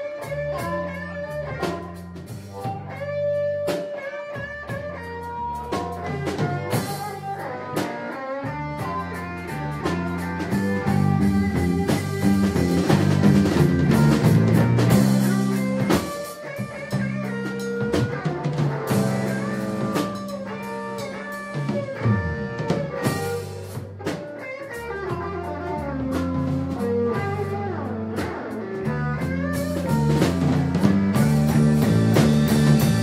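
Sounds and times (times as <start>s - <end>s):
drum kit: 0.0s - 33.0s
electric guitar: 0.0s - 33.0s.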